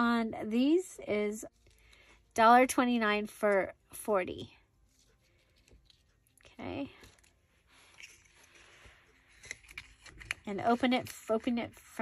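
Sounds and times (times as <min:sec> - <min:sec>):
packaging rustling: 0:04.8 - 0:11.4.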